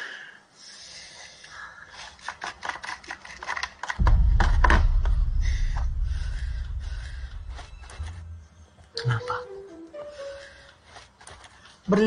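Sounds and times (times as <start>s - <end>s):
deep rumbling boom: 4.0s - 9.0s.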